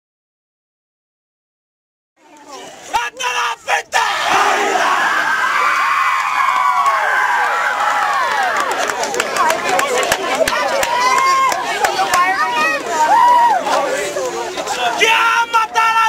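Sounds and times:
many voices shouting together: 3.0s - 8.7s, 10.8s - 14.0s.

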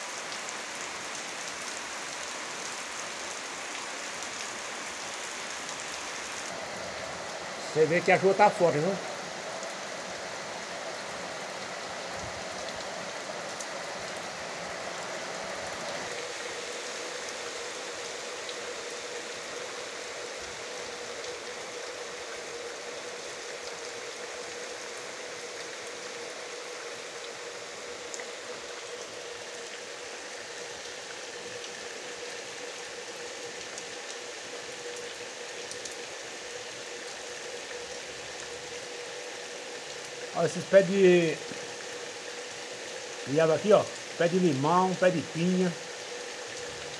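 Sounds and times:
rain on plastic tank: 0.0s - 46.9s
rain on wet ground: 0.0s - 46.9s.

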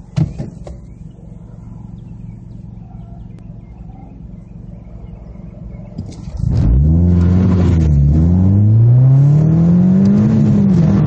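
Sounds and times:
car engine idling: 0.0s - 8.9s.

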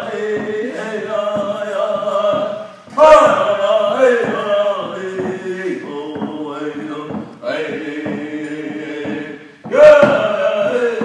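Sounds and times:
men singing in unison: 0.0s - 11.0s.

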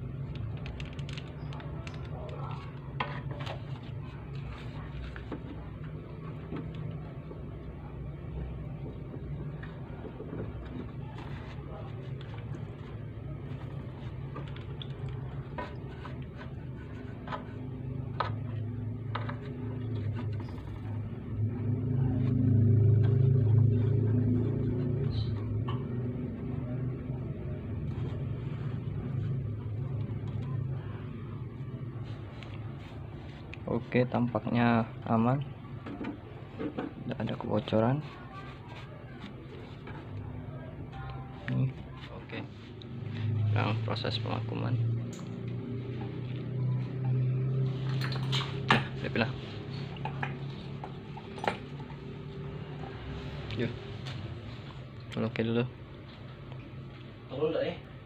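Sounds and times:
low motor rumble: 0.0s - 58.0s.

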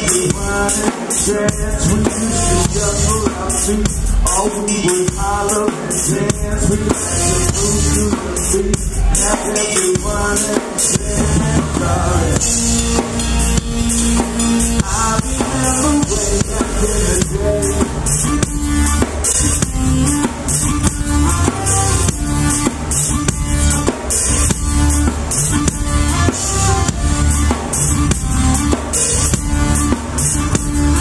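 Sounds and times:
drum kit beat: 0.0s - 31.0s
sustained bass notes: 1.3s - 4.7s, 6.2s - 9.5s, 10.9s - 31.0s.

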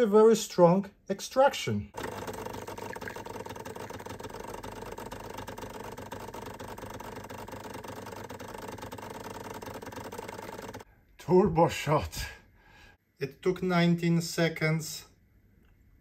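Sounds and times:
espresso machine pump humming: 2.0s - 10.9s.

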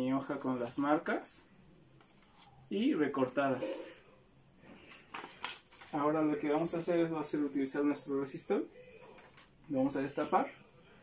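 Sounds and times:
paper rustling: 2.0s - 6.8s.

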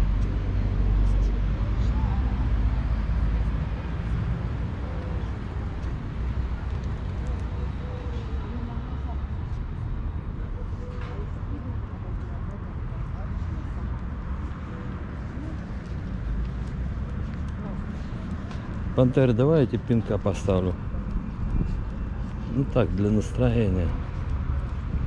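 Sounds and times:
faint voices: 0.0s - 25.0s
road traffic rumble: 0.0s - 25.0s.

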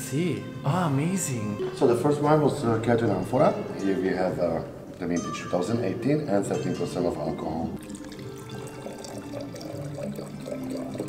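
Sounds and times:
wine pouring into a glass: 6.4s - 11.0s.

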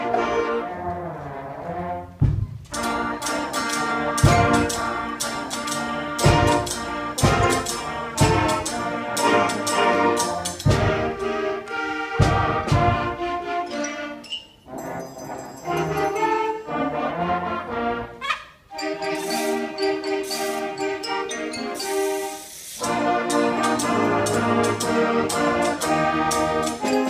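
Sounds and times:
concert band playing: 0.0s - 13.8s, 18.7s - 27.0s
heavy percussion strokes: 2.2s - 13.5s, 18.7s - 27.0s.

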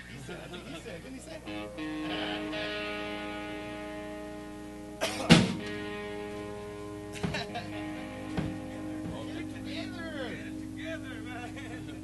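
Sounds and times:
electric guitar chord ringing: 0.8s - 12.0s.

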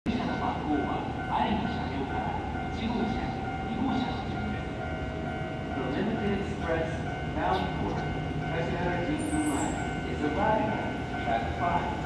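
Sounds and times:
public-address announcement: 0.1s - 12.0s.

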